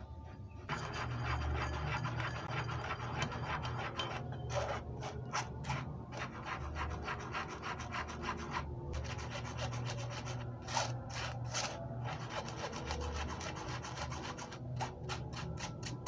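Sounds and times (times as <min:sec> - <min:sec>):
spoon scraping flour through sieve: 0:00.7 - 0:16.0.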